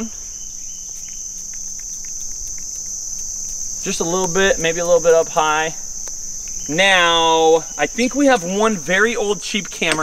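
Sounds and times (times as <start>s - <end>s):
high-pitched insect chorus: 0.0s - 10.0s
faint ticks: 0.5s - 5.3s, 6.0s - 6.7s.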